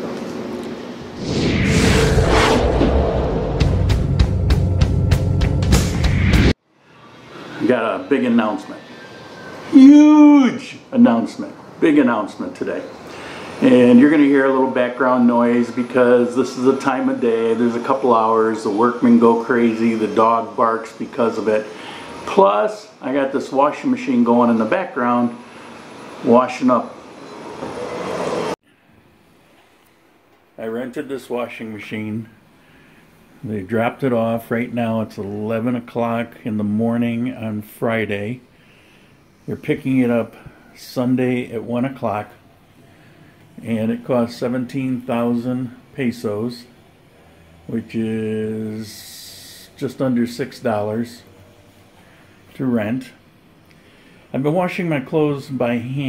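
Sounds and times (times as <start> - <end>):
whoosh: 1.0 - 5.1
machine rushing noise: 1.0 - 6.6, 15.1 - 22.3
deep bass: 1.2 - 6.5
intro music: 1.2 - 6.5.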